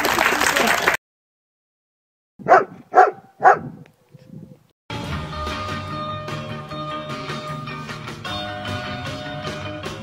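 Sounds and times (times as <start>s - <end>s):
dog barking: 2.4s - 3.8s.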